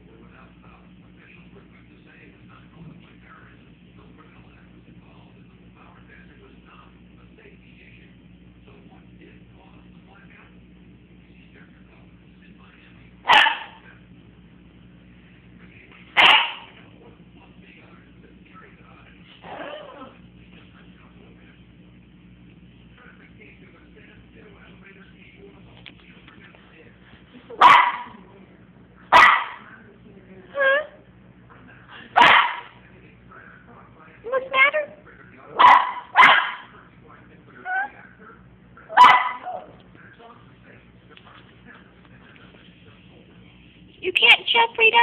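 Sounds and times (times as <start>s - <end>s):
dog barking: 13.2s - 13.8s, 16.2s - 16.8s, 27.6s - 28.2s, 29.1s - 29.7s, 32.2s - 32.8s, 35.6s - 36.8s, 38.9s - 39.8s.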